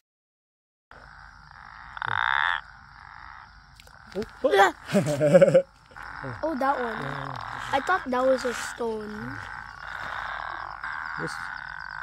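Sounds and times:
frog croaking: 0:00.9 - 0:12.0.

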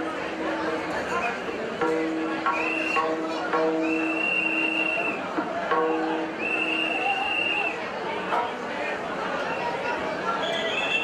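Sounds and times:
crowd hubbub with voices: 0:00.0 - 0:11.0.

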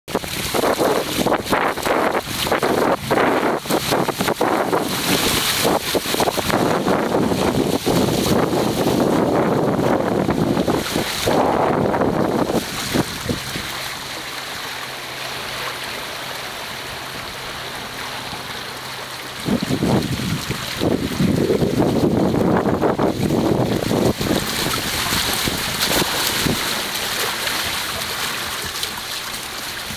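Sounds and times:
wind buffeting microphone: 0:00.1 - 0:14.2, 0:16.3 - 0:29.0
water rushing past hulls: 0:00.1 - 0:29.9.

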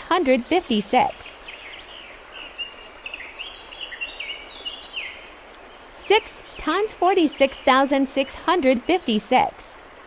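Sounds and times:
small birds chirping: 0:00.0 - 0:09.8.

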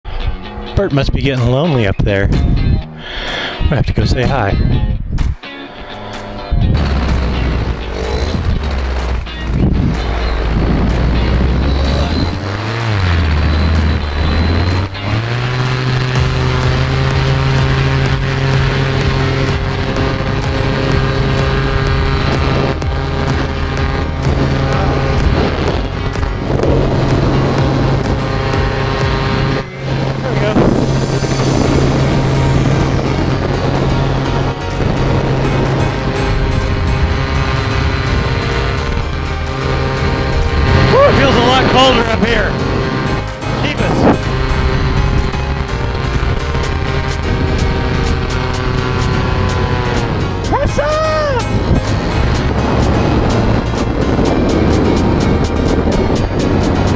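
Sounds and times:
paramotor engine droning: 0:05.6 - 0:56.9.

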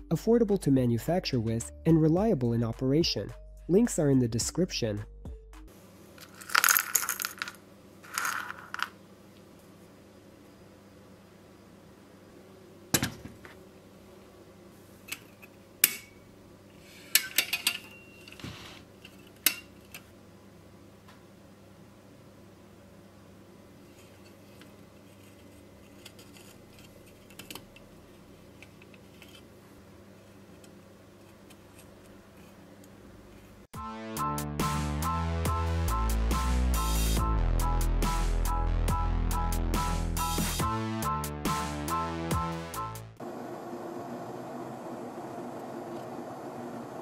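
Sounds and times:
small components clattering on a mat: 0:06.2 - 0:09.0.

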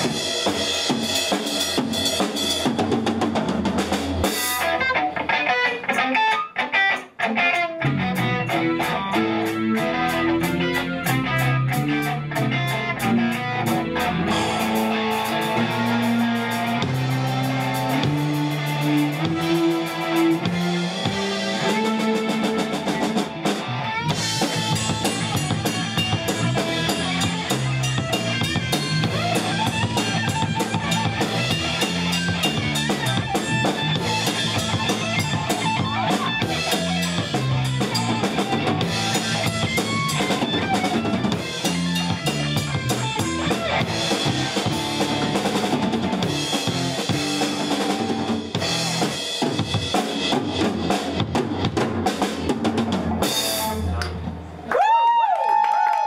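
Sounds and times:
busy drumming: 0:00.0 - 0:54.5
live rock band playing: 0:00.0 - 0:54.6.

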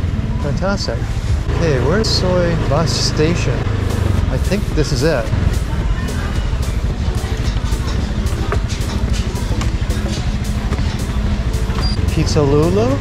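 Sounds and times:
faint music: 0:00.0 - 0:13.0
scooter engine running: 0:01.5 - 0:13.0.

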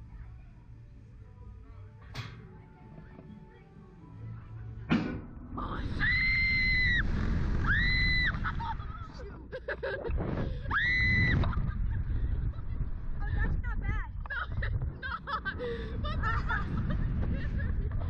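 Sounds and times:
wind rushing over microphone: 0:05.5 - 0:09.2, 0:10.1 - 0:18.0
riders screaming: 0:05.8 - 0:08.7
people gasping and laughing: 0:08.3 - 0:10.7, 0:11.3 - 0:13.3, 0:14.3 - 0:18.0.

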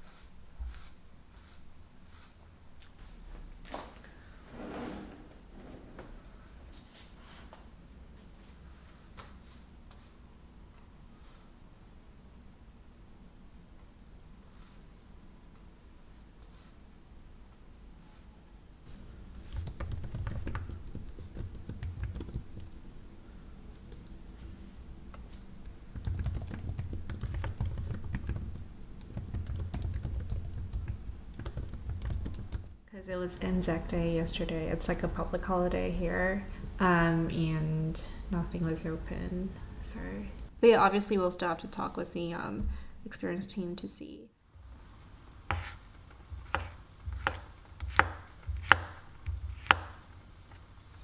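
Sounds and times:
typing on computer keyboard: 0:19.4 - 0:22.7, 0:25.9 - 0:32.7
knife chopping on wooden board: 0:45.5 - 0:45.8, 0:46.4 - 0:50.0.

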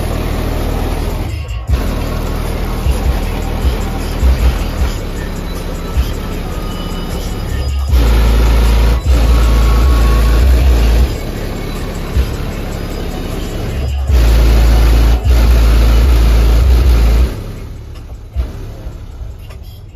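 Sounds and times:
car stereo music with heavy bass: 0:00.0 - 0:19.9.

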